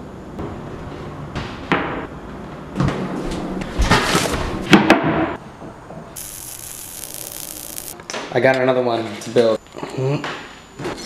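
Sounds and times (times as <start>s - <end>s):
spark shower hiss: 6.2s - 8.0s.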